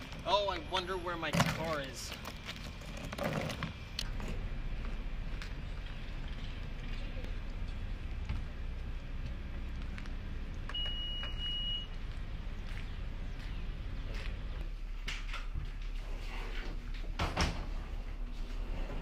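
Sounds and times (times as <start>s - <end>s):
low outdoor rumble: 0.0s - 19.0s
car electronic beep: 10.7s - 12.0s.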